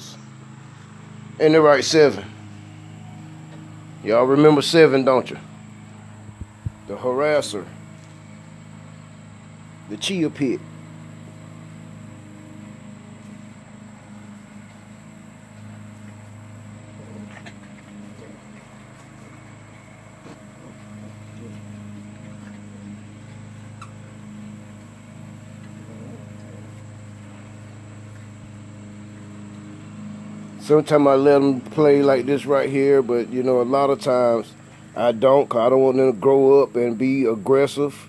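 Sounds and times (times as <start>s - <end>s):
low machine hum: 0.0s - 38.0s
puppies scuffling in grass: 10.0s - 32.0s.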